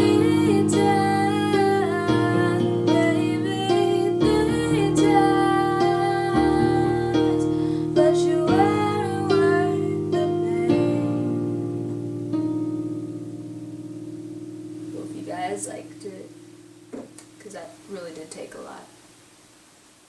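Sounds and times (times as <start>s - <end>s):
woman singing a slow ballad: 0.0s - 11.6s
electronic keyboard chords: 0.0s - 17.5s.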